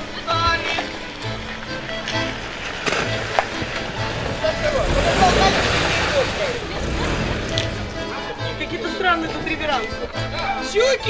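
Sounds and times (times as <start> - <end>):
voices calling out: 0.0 - 11.0
car driving past on wet road: 1.1 - 8.7.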